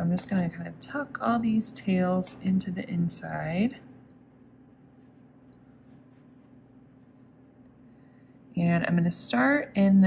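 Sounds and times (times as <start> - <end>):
low steady room hum: 0.0 - 10.0
hands rustling fabric: 4.2 - 7.6.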